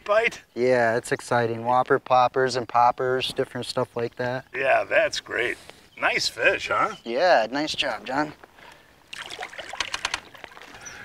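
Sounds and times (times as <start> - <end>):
water splashing and dripping: 8.6 - 11.0.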